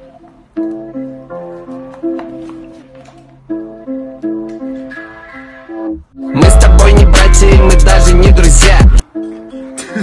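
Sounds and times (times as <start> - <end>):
plucked guitar melody: 0.0 - 10.0.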